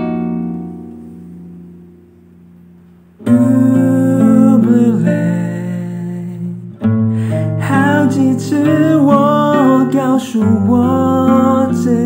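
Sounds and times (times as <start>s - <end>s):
classical guitar chord ringing: 0.0s - 12.0s.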